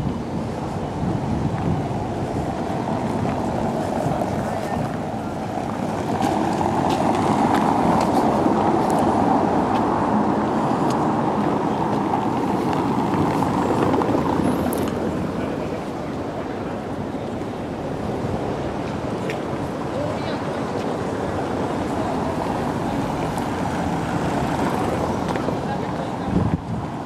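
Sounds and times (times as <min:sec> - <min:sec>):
car tyres rumbling over cobblestones: 0:00.0 - 0:27.0.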